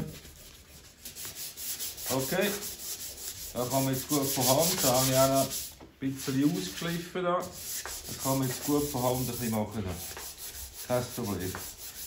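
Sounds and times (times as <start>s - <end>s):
sandpaper rubbing on metal panel: 0.4s - 6.8s, 7.4s - 12.0s.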